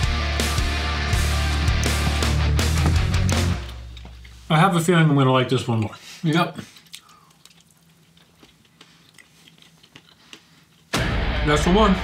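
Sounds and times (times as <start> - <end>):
chewing candy bar: 6.7 - 10.9.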